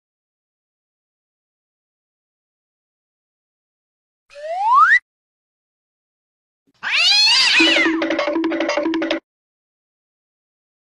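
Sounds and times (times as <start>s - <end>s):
cat meowing: 6.8s - 8.0s
rhythmic music beat: 7.6s - 9.2s.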